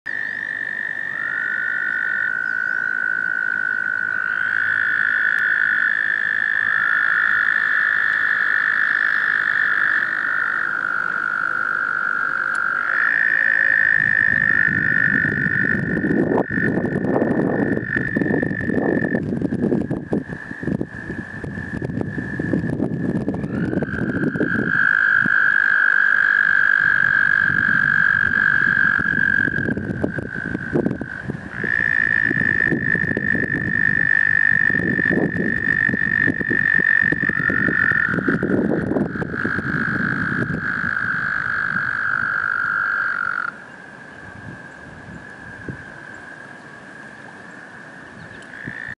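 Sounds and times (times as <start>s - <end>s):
toads trilling: 0.1s - 47.3s, 48.0s - 48.9s
low rumble on microphone: 13.5s - 25.4s, 26.8s - 42.8s.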